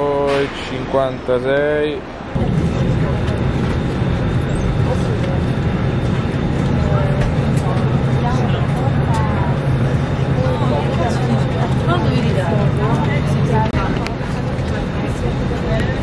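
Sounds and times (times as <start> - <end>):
airliner cabin engine drone: 0.0 - 16.0
faint passenger voices: 0.0 - 16.0.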